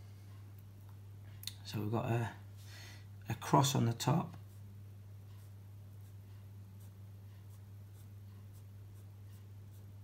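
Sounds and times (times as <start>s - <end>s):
steady low hum: 0.0s - 10.0s
marker scratching on paper: 5.3s - 10.0s.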